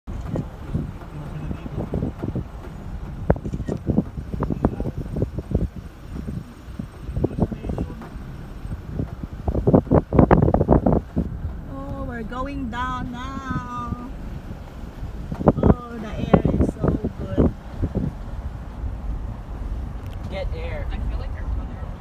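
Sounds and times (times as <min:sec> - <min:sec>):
road rumble: 0:00.0 - 0:22.0
wind buffeting microphone: 0:00.1 - 0:22.0.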